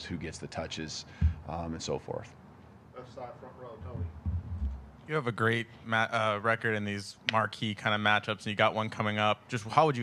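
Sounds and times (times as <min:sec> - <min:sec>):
low dull thumps: 0:01.2 - 0:01.5, 0:03.8 - 0:05.0.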